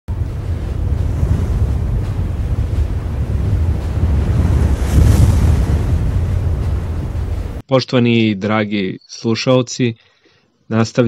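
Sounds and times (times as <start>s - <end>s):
wind-like rumble with hiss: 0.1s - 7.6s.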